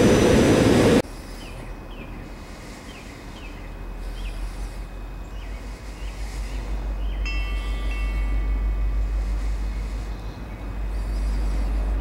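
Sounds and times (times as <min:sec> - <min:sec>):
train low rumble: 0:00.0 - 0:12.0.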